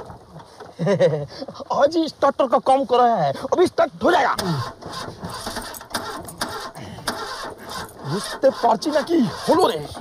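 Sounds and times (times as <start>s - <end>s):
car starter motor cranking: 4.4s - 10.0s.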